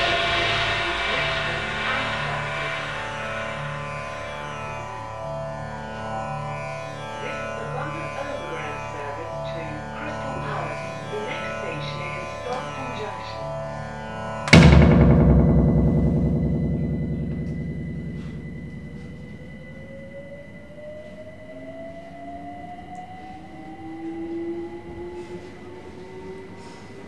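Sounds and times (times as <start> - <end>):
loud ringing hit: 0.0 - 5.5, 14.5 - 20.8
rising whine: 0.0 - 26.6
sampled music: 14.4 - 20.4.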